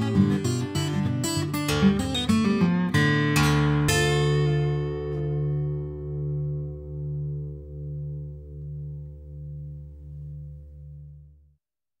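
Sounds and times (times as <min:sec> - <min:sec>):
acoustic blues guitar chord ringing: 0:00.0 - 0:11.4.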